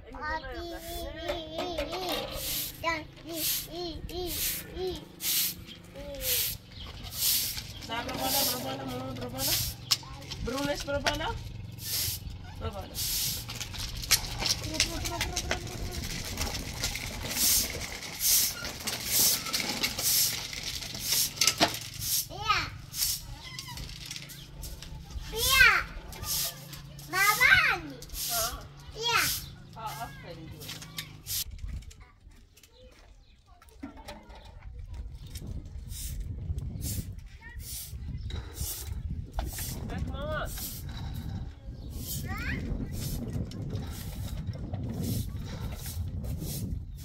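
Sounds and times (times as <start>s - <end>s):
child calling and squealing: 0.6s - 5.1s, 6.0s - 6.5s
broom sweeping concrete floor: 0.8s - 1.2s, 2.0s - 10.0s, 11.8s - 13.7s, 17.2s - 31.5s, 35.9s - 41.0s, 41.9s - 47.0s.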